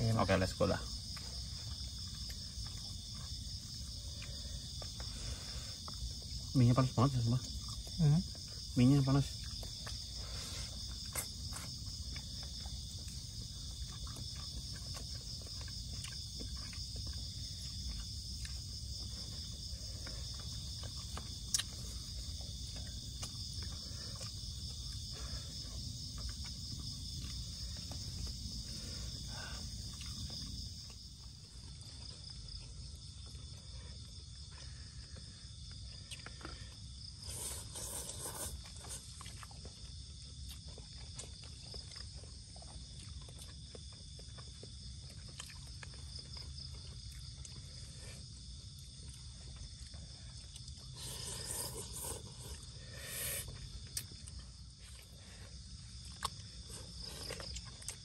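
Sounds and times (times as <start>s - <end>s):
night insects chirring: 0.0s - 58.0s
people eating noodles: 0.0s - 58.0s.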